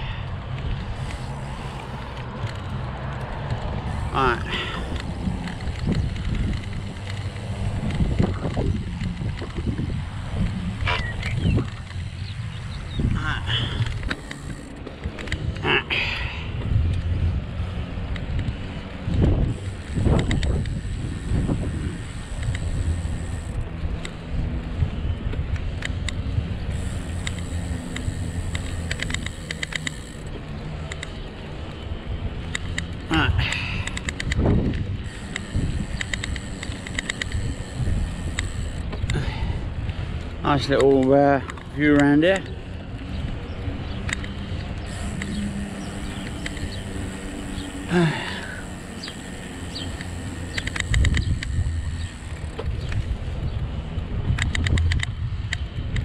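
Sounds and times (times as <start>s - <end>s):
bicycle clicks and rattles: 0.0s - 56.0s
wind rumbling on microphone: 0.0s - 56.0s.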